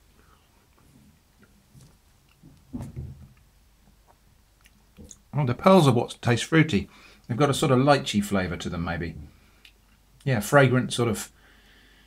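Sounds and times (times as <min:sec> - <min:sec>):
person chewing: 0:03.4 - 0:05.2.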